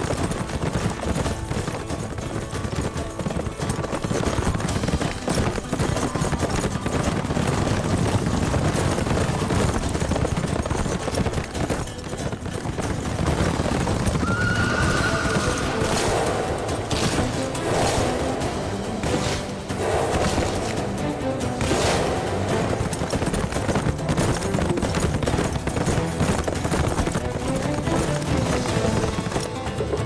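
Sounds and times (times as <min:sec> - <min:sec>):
background music: 0:00.0 - 0:30.0
horse hoofbeats on forest path: 0:00.0 - 0:30.0
horse neighing: 0:14.2 - 0:16.7.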